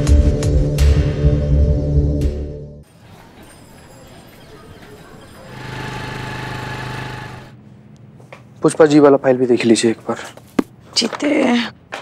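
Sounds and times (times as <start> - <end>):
motor scooter engine running: 4.4 - 7.6.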